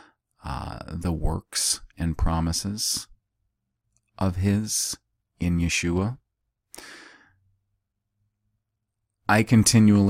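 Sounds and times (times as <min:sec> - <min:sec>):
man exhaling breathily: 0:06.8 - 0:07.3.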